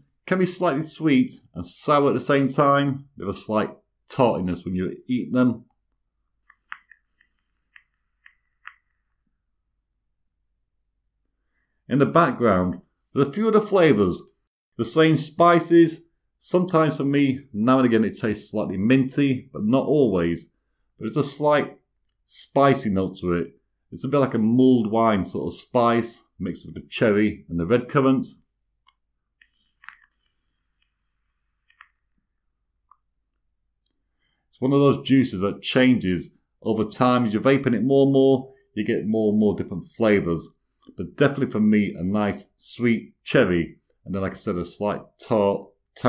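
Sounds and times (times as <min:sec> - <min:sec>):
vape coil hissing: 0:06.5 - 0:09.0.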